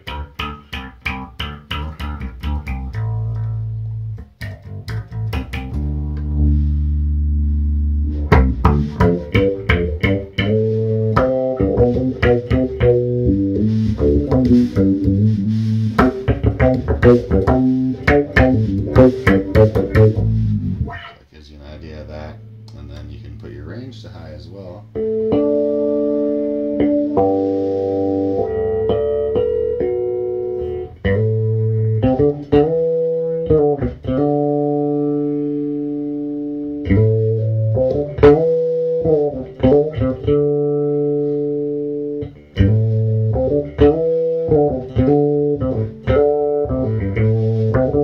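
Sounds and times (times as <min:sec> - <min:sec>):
electric bass with envelope filter: 0:00.0 - 0:48.0.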